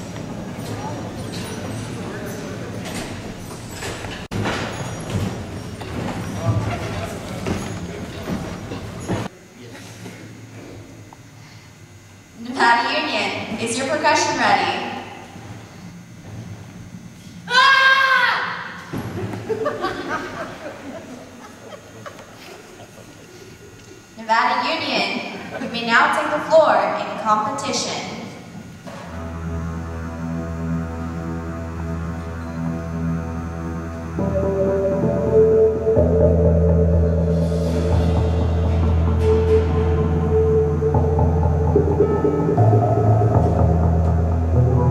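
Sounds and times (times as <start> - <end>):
slow sustained chords: 28.2 - 44.9
low held bass note: 28.9 - 44.9.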